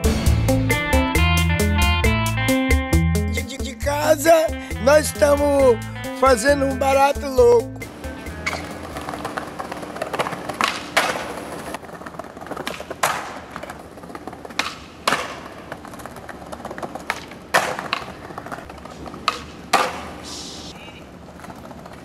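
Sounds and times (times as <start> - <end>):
skateboard wheels rolling on stone: 7.8 - 22.0
skateboard popping and landing clacks: 8.4 - 20.3, 21.0 - 22.0.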